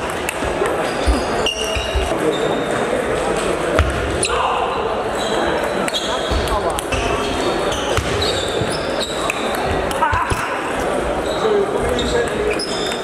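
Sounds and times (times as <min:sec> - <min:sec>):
background chatter: 0:00.0 - 0:13.0
play from other tables: 0:00.0 - 0:13.0
shoes squeaking on floor: 0:00.3 - 0:02.9, 0:03.9 - 0:10.4, 0:11.2 - 0:13.0.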